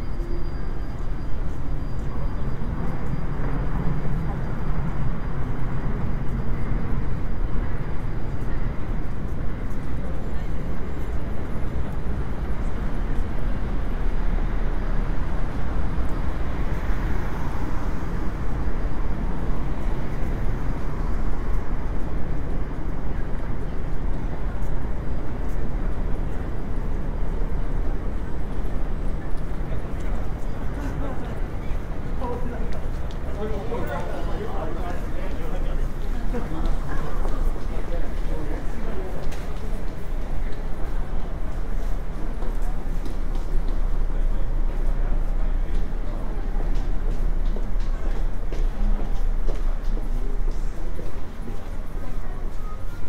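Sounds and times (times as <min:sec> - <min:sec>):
road traffic: 0:00.0 - 0:53.0
voices of passers-by: 0:00.0 - 0:53.0.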